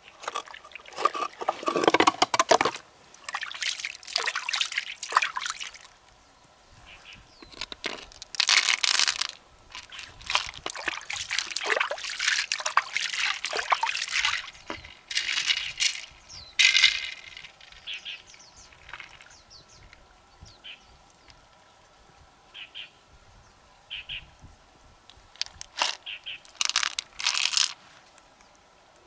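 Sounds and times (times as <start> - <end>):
water trickling: 0.0 - 6.3, 7.4 - 22.2
pearls clattering in a shell: 7.5 - 18.0, 25.4 - 27.8.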